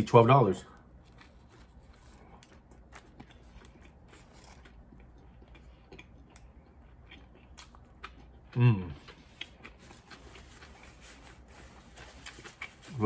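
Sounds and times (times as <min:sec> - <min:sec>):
chewing sandwich: 0:00.7 - 0:13.0.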